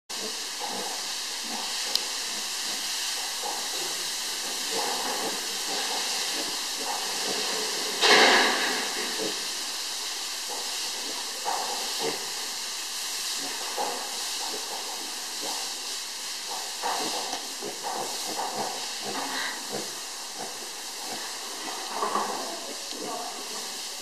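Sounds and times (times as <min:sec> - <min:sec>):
steady hiss: 0:00.1 - 0:24.0.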